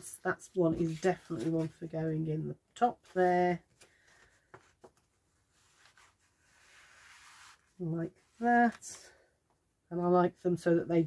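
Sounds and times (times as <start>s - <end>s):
paper rubbing: 5.5s - 8.4s.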